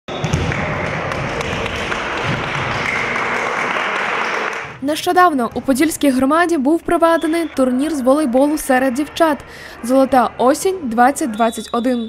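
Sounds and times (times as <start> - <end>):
echoing hall noise: 0.1 - 12.0
indistinct voices: 4.8 - 12.0.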